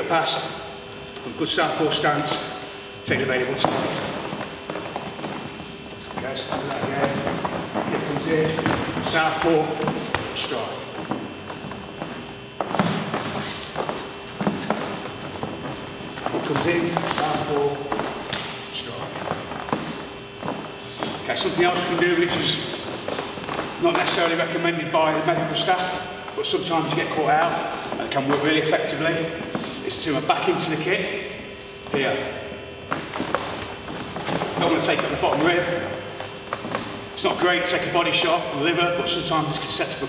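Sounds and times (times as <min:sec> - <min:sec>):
bare feet shuffling on foam mats: 0:03.2 - 0:37.8.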